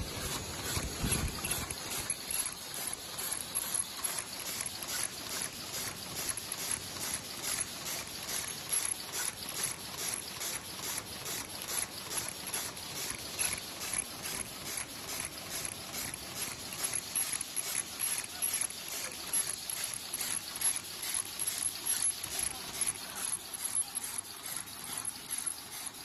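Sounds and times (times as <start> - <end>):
machine clattering and clacking: 0.0 - 26.0
steady thin high tone: 18.1 - 26.0.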